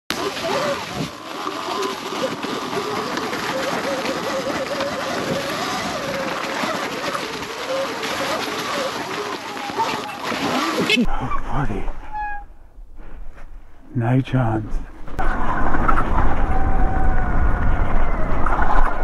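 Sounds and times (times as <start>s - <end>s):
tyres rolling on wet leaves: 0.1s - 11.1s.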